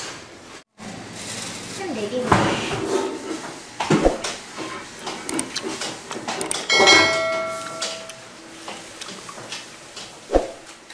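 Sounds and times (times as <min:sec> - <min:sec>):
knocks and clicks: 0:05.1 - 0:08.2
metal object struck ringing: 0:06.7 - 0:08.3.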